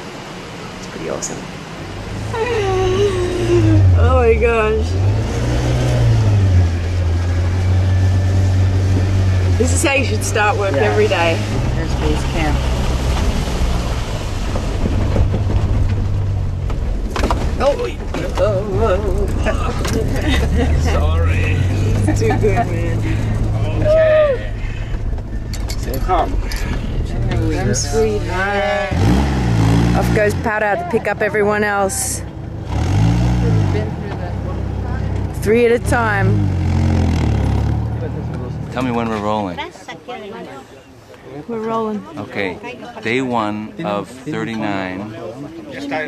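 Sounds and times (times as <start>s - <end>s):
vehicle engine and road drone: 0.0s - 46.0s
knocks and rattles: 11.4s - 20.6s
people laughing: 18.9s - 24.8s.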